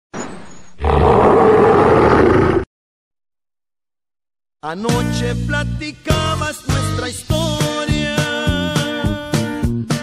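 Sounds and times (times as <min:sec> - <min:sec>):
tiger growling and roaring: 0:00.8 - 0:02.7.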